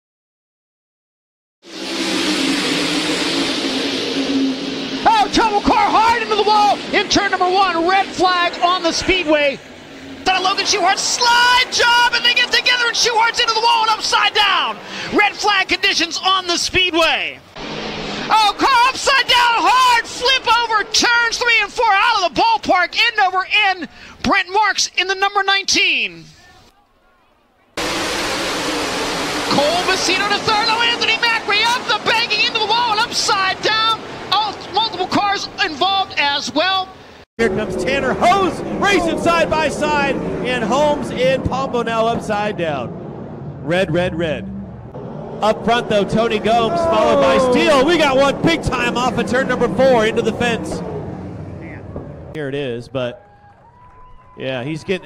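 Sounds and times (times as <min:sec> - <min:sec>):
race car engines droning: 0:01.6 - 0:25.4, 0:26.3 - 0:55.0.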